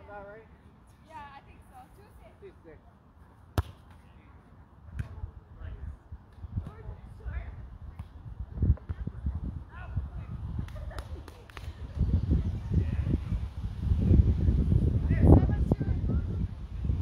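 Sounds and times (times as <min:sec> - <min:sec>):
volleyball hit by hand: 0:03.6 - 0:04.0.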